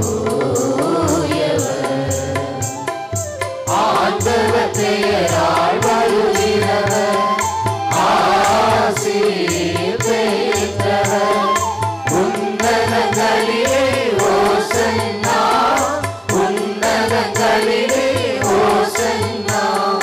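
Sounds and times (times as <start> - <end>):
steady drum beat: 0.0 - 20.0
person chanting a hymn: 3.7 - 20.0.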